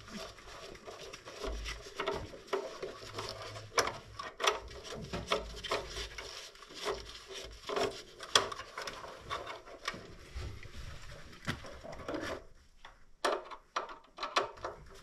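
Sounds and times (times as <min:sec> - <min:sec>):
wires rubbing: 0:00.0 - 0:12.5
plastic parts clicking: 0:13.2 - 0:15.0.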